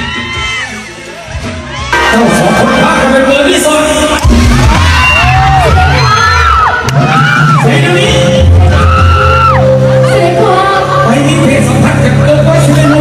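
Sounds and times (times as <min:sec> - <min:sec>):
live band music: 0:00.4 - 0:13.0
steady bass line: 0:01.0 - 0:13.0.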